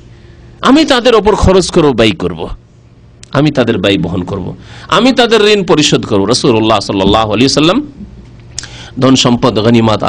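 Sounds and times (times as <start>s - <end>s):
low steady hum: 0.0s - 10.0s
man lecturing into microphone: 0.6s - 2.6s, 3.2s - 10.0s.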